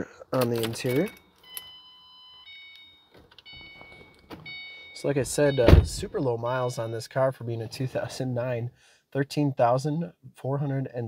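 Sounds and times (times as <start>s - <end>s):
dashboard warning chime: 0.6s - 7.4s.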